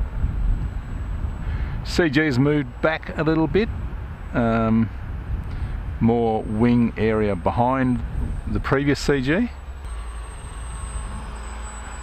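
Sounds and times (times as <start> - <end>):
model plane motor hum: 0.0 - 12.0
wind rumbling on microphone: 0.0 - 12.0.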